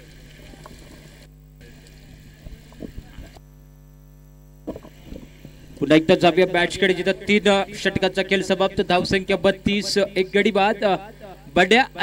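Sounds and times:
electrical mains hum: 0:00.0 - 0:12.0
background hiss: 0:04.6 - 0:12.0.

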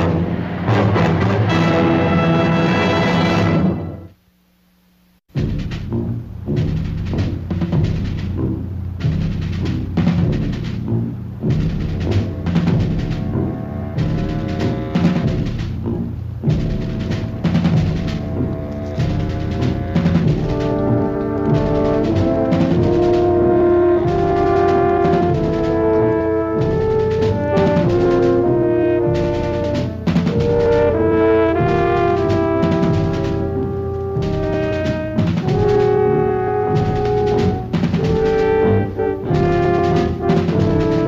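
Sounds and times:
timpani steady beat: 0:00.0 - 0:04.1, 0:05.3 - 0:41.0
low brass: 0:00.0 - 0:04.2, 0:05.4 - 0:41.0
sustained brass chords: 0:00.0 - 0:04.2, 0:05.4 - 0:41.0.

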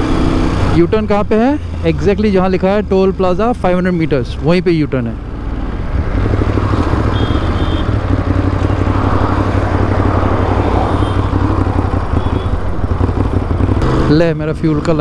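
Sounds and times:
motorcycle engine running: 0:05.2 - 0:15.0
wind rush over microphone: 0:08.7 - 0:13.7.

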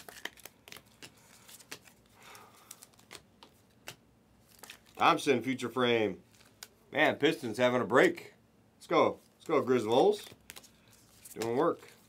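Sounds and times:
trading cards flipped by hand: 0:00.0 - 0:05.0, 0:09.4 - 0:12.0.

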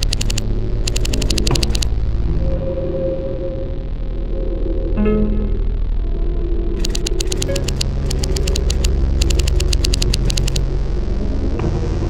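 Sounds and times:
rapid sharp clicks: 0:00.0 - 0:01.9, 0:06.8 - 0:10.7
low steady drone: 0:00.0 - 0:12.0.

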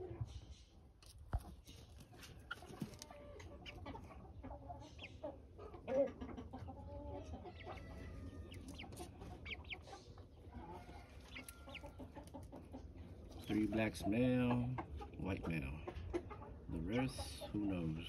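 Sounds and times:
young chickens calling: 0:00.0 - 0:18.0.

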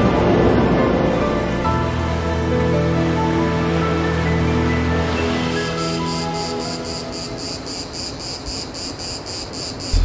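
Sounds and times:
soft music: 0:00.0 - 0:07.7
insect chirping: 0:05.6 - 0:10.0.

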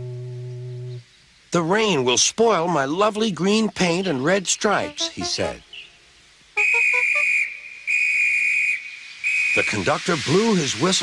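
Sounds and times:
whistle blasts: 0:04.8 - 0:05.6, 0:06.6 - 0:10.0.

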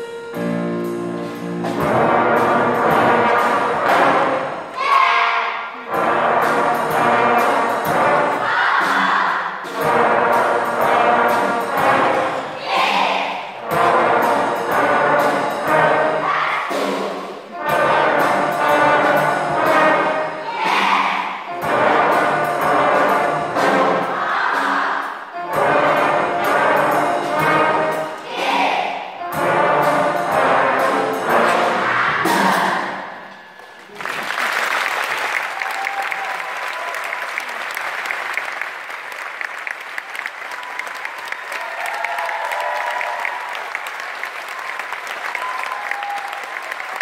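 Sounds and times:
brass band playing: 0:00.0 - 0:33.5.

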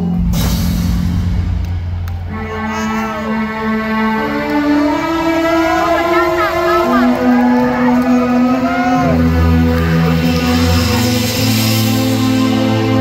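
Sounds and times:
voices shouting: 0:05.3 - 0:09.3.

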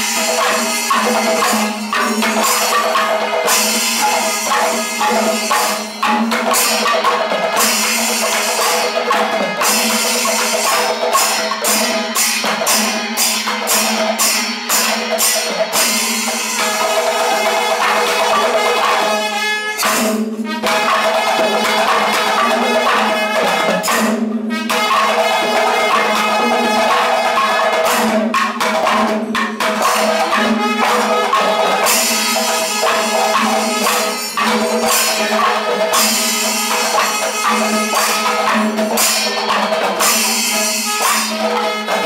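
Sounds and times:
cymbals: 0:00.0 - 0:42.0
hand-beaten hourglass drums: 0:00.0 - 0:42.0.

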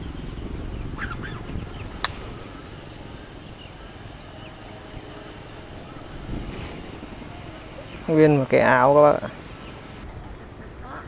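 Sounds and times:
bird calls: 0:00.0 - 0:11.0
low outdoor rumble: 0:00.0 - 0:11.0
sharp click: 0:02.0 - 0:02.3.

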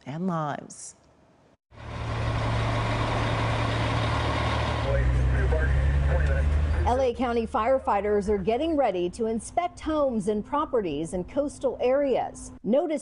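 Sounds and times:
diesel engine inside cab: 0:01.7 - 0:08.5
road noise: 0:01.7 - 0:09.2.

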